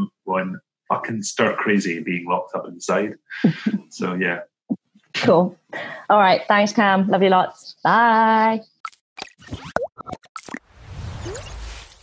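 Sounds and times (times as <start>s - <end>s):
whoosh: 10.6s - 12.0s.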